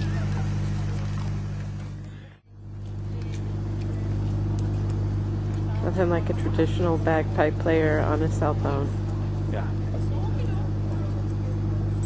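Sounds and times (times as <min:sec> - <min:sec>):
low drone of held tones: 0:00.0 - 0:12.0.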